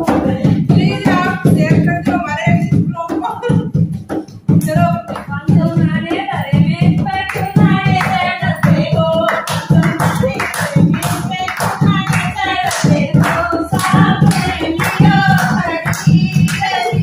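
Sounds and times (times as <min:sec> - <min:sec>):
women singing folk song: 0:00.0 - 0:03.8, 0:04.5 - 0:17.0
hand drum beat: 0:00.0 - 0:17.0
rhythmic hand clapping: 0:00.0 - 0:17.0.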